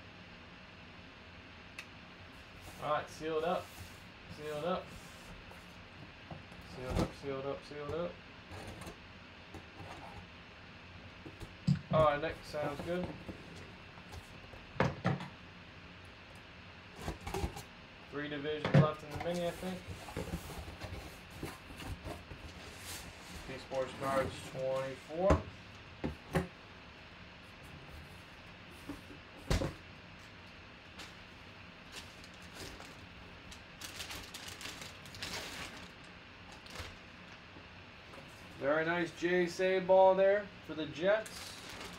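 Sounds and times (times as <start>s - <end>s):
plastic crinkling: 30.9s - 37.4s, 41.2s - 41.9s
bag rustling: 31.0s - 36.0s, 41.3s - 41.9s.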